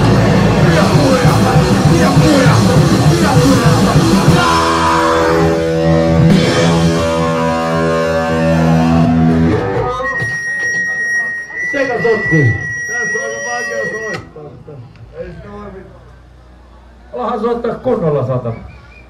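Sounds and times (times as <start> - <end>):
distorted electric guitar and band: 0.0 - 14.6
steady high whine: 0.0 - 19.0
voices: 9.3 - 19.0.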